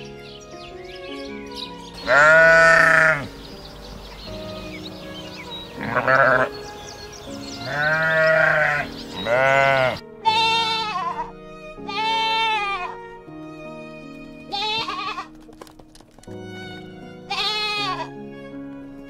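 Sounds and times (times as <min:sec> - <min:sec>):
soft piano music: 0:00.0 - 0:19.0
animal bleating: 0:01.5 - 0:03.3, 0:05.6 - 0:06.6, 0:07.5 - 0:13.0, 0:14.5 - 0:15.4, 0:17.3 - 0:18.1.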